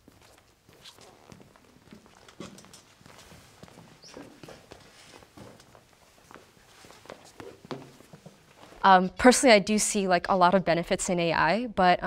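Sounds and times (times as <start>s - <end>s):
footsteps on stage floor: 0.0s - 8.9s.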